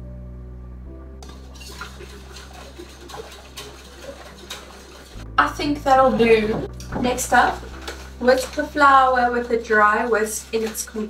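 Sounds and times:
soft background music: 0.0s - 11.0s
whisk clinking in ceramic bowl: 1.3s - 5.2s.

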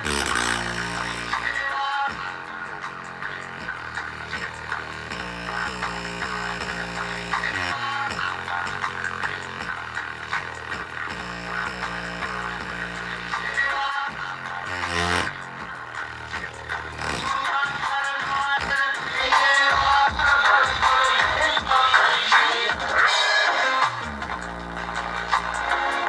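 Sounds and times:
music with steady bass line: 0.0s - 26.0s.

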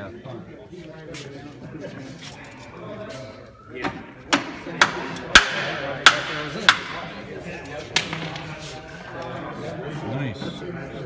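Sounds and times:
low background voices: 0.0s - 11.0s.

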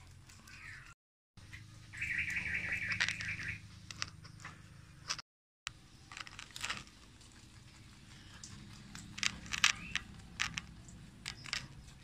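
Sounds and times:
bird warbling trill: 1.9s - 3.7s.

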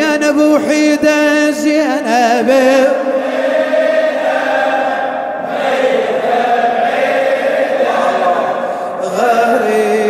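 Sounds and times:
crowd of men chanting: 2.9s - 10.0s.

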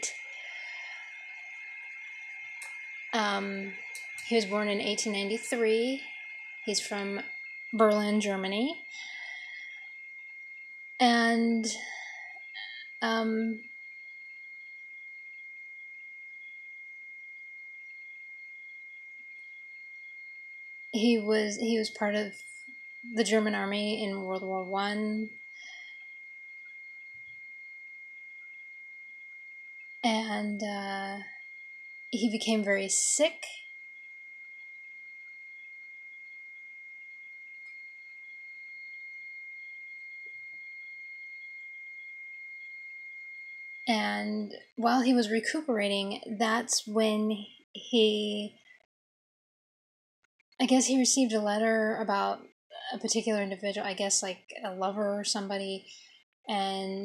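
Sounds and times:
steady high-pitched whine: 0.0s - 48.9s, 50.6s - 57.0s.

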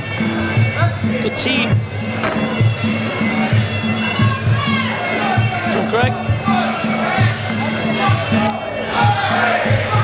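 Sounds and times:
reedy oboe melody: 0.0s - 9.7s.

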